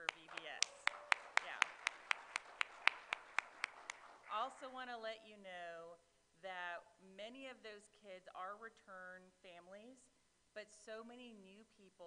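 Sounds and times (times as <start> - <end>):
hand clapping in steady rhythm: 0.0 - 4.7.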